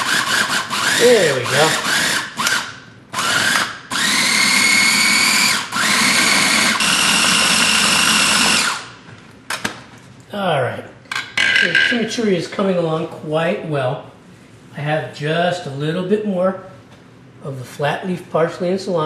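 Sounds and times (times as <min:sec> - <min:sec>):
food processor motor whine: 0:00.0 - 0:09.0.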